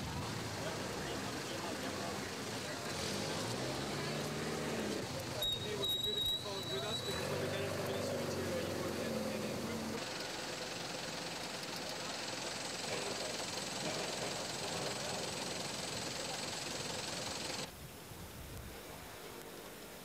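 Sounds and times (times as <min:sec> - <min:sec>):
voices: 0:00.0 - 0:10.0, 0:11.7 - 0:17.7
vehicle engine running: 0:00.0 - 0:17.7.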